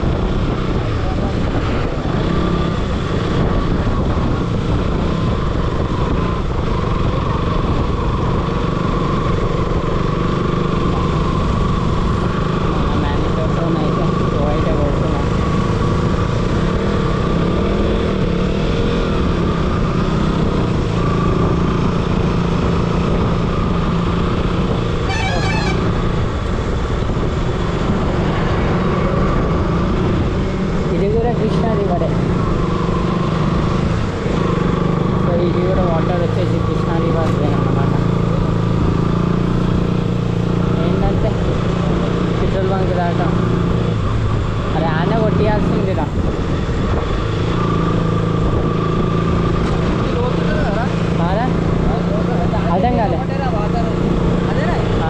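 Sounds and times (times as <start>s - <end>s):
motorcycle engine cruising: 0.0s - 55.0s
second motorcycle riding alongside: 0.0s - 55.0s
wind rushing over microphone: 0.0s - 55.0s.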